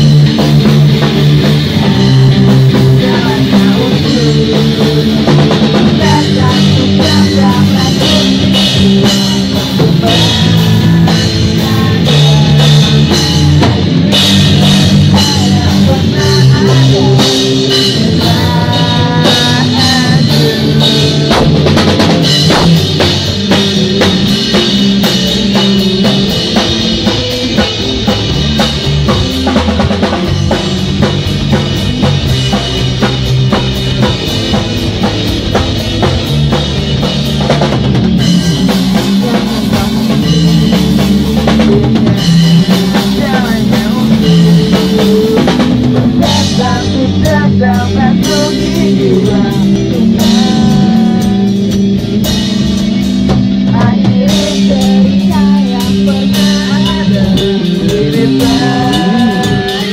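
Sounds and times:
drum kit beat: 0.0 - 59.9
electric guitars: 0.0 - 59.9.

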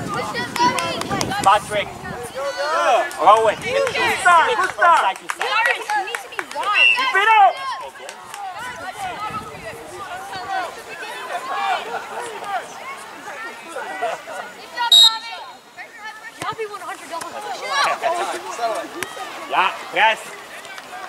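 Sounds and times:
people chattering: 0.0 - 21.0
referee's whistle blast: 14.9 - 15.6.

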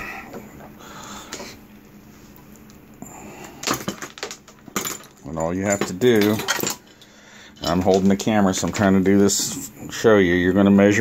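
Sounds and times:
metal probes clinking: 3.6 - 8.3.

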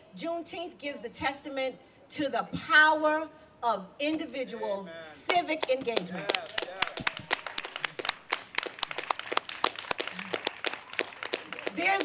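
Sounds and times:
people clapping: 5.3 - 12.0.

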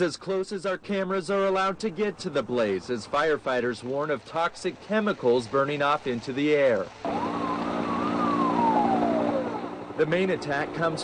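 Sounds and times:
helicopter engine hum and whine: 7.0 - 11.0.

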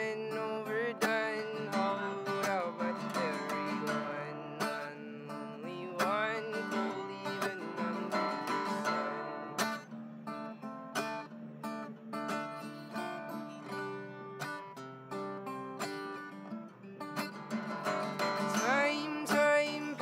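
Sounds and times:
man singing: 0.0 - 9.6, 18.3 - 20.0
acoustic guitar strumming: 0.0 - 20.0.

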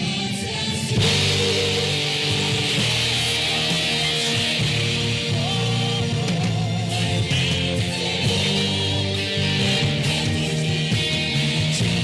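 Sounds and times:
bass guitar: 0.0 - 12.0
drum kit: 0.0 - 12.0
electric guitar: 0.0 - 12.0
keyboard: 0.0 - 12.0
cymbals: 0.9 - 12.0.

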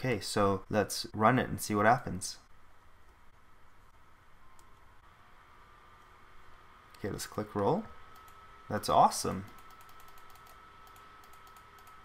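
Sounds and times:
faint steady whine: 0.0 - 12.0
faint computer mouse clicks: 9.4 - 12.0.

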